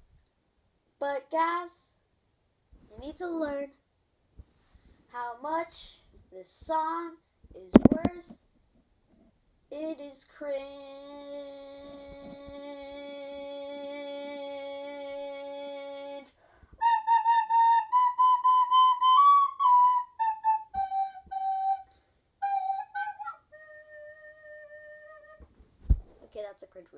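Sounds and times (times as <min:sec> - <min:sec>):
sharp thump: 0:07.7 - 0:08.4, 0:25.8 - 0:26.2
soprano recorder playing a tune: 0:16.8 - 0:25.4.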